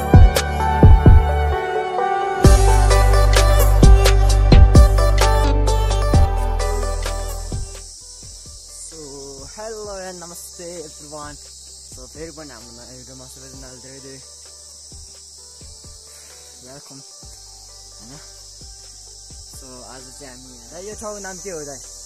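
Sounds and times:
insects chirring: 0.0 - 22.0
person speaking: 19.6 - 22.0.

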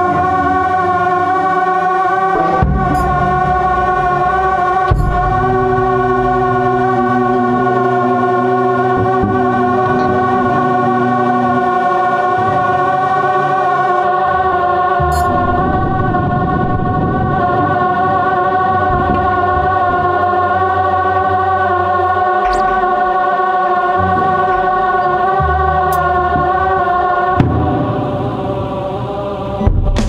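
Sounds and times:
sustained synthesizer chord: 0.0 - 29.8.

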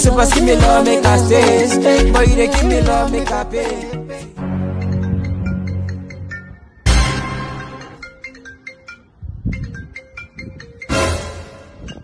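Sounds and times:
phone ringtone melody: 0.0 - 12.0.

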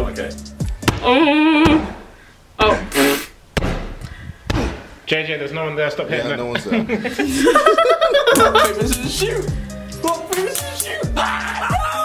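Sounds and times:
person exclaiming: 2.6 - 3.0, 8.9 - 12.0.

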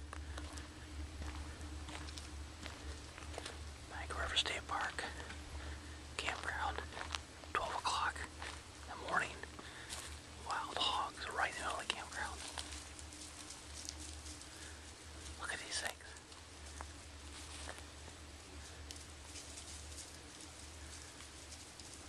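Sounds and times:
steady low hum: 0.0 - 22.0
person whispering: 3.9 - 5.4, 6.1 - 9.6, 10.4 - 12.8, 15.3 - 16.2.

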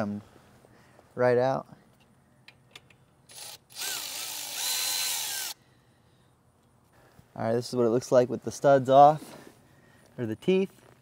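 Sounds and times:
power drill motor whine: 3.3 - 5.6.

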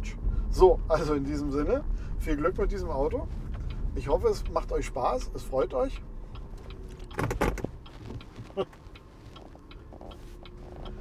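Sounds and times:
road and tyre rumble: 0.0 - 11.0.

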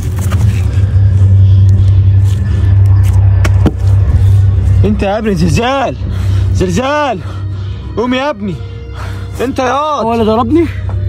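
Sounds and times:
low rumbling drone: 0.0 - 11.0.

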